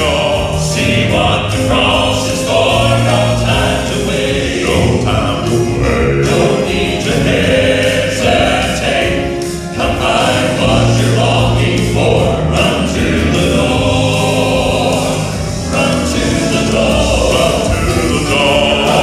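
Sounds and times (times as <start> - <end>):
keyboard accompaniment: 0.0 - 19.0
male gospel quartet singing: 0.0 - 19.0.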